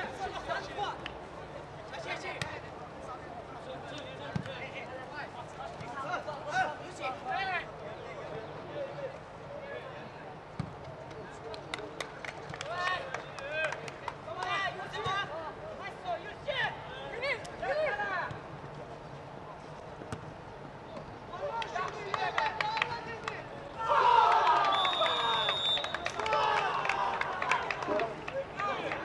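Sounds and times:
players shouting: 21.4s - 29.0s.

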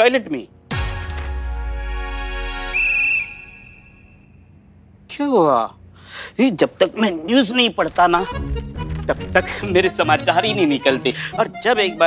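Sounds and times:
high whistle-like tone: 2.4s - 4.4s
held musical chord: 8.2s - 12.0s.

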